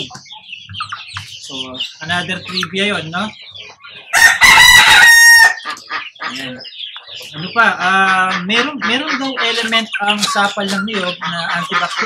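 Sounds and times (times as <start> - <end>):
rooster crowing: 4.1 - 5.7.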